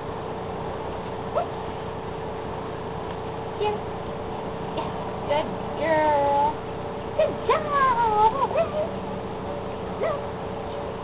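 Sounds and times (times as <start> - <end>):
dog whining: 1.4 - 1.6, 7.2 - 9.0.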